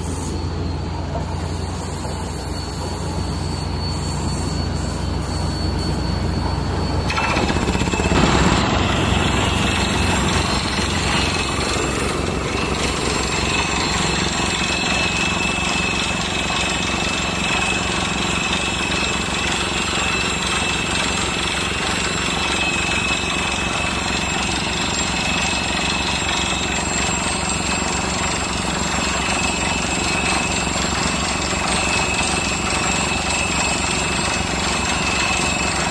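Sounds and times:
engine running: 0:00.0 - 0:35.9
drilling rig air hammer rattling: 0:07.0 - 0:35.9.

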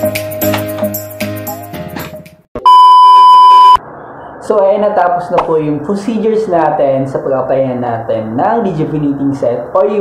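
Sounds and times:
background music: 0:00.0 - 0:02.4
electronic bleep: 0:02.6 - 0:03.8.

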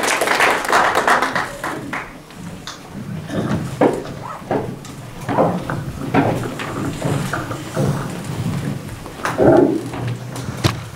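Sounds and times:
muffled voices: 0:00.6 - 0:09.8.

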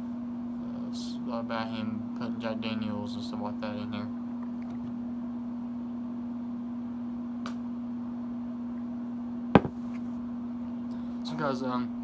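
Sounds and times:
low electrical hum: 0:00.0 - 0:12.0
sharp knock: 0:09.6 - 0:09.8.

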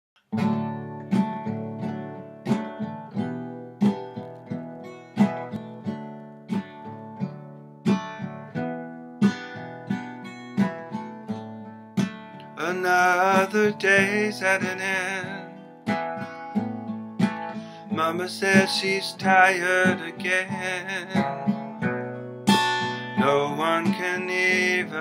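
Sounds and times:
acoustic guitar chords: 0:00.2 - 0:25.0.

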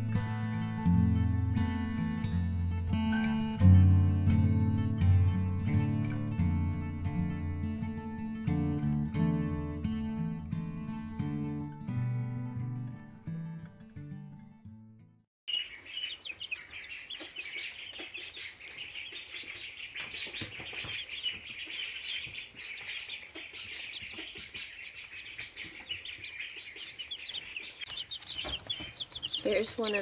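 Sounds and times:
chicks peeping: 0:15.5 - 0:30.0.

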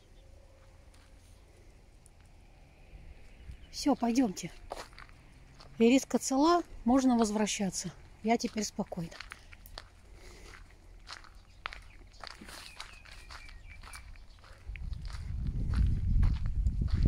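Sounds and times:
footsteps on gravel: 0:00.6 - 0:01.5, 0:03.8 - 0:17.0
low rumble on microphone: 0:13.9 - 0:17.0.

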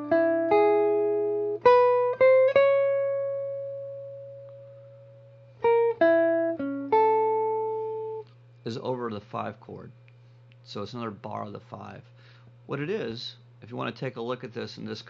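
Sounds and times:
electric guitar blues lick: 0:00.0 - 0:05.0, 0:05.6 - 0:08.3
faint amplifier hum: 0:00.0 - 0:15.0.

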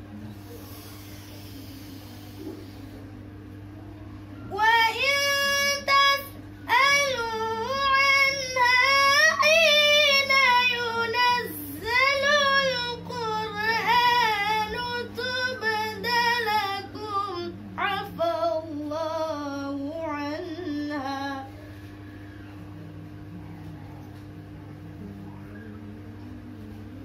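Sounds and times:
steady low hum: 0:00.0 - 0:27.0
girl reciting melodically: 0:04.5 - 0:21.5.

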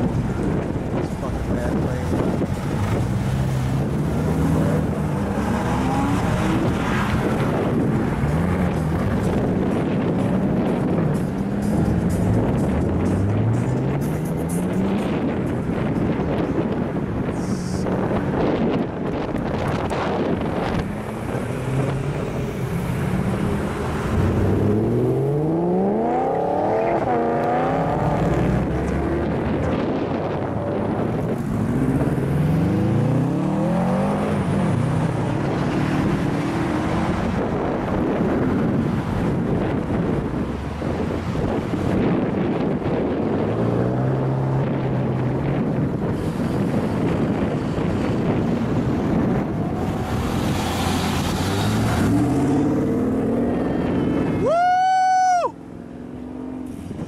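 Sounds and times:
cars and trucks driving past: 0:00.0 - 0:54.7, 0:55.3 - 0:57.0
car engine revving hard: 0:01.6 - 0:10.0, 0:19.7 - 0:30.9, 0:31.6 - 0:37.8, 0:47.0 - 0:54.3.

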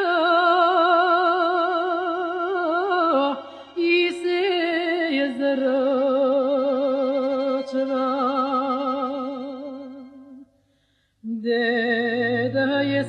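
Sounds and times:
woman singing folk song: 0:00.0 - 0:10.4, 0:11.2 - 0:13.0
low steady drone: 0:11.9 - 0:13.0.

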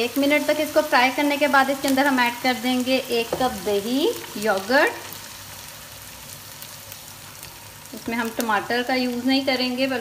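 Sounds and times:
food sizzling in oil: 0:00.0 - 0:10.0.

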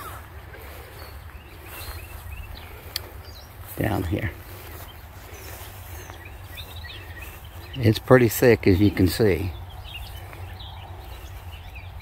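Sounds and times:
footsteps through tall grass: 0:00.0 - 0:12.0.

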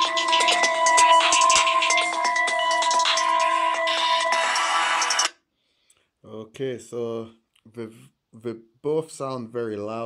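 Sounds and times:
hip-hop beat through phone speakers: 0:00.0 - 0:05.4.

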